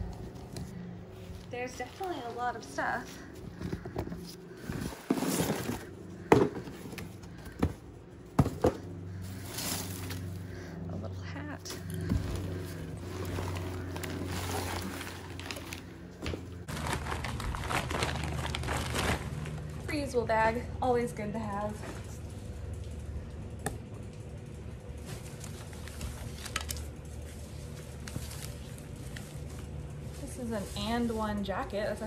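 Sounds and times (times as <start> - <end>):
plastic bag rustling: 9.1 - 10.6, 11.7 - 19.8.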